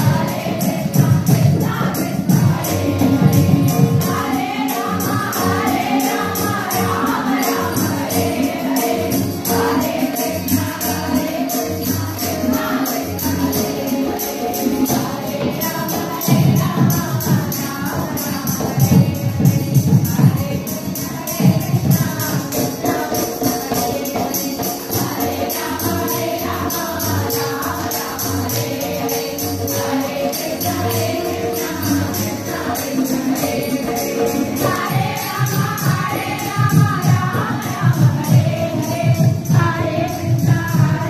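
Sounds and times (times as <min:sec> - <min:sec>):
quick jingling beat: 0:00.0 - 0:41.0
women chanting a devotional song: 0:00.0 - 0:41.0.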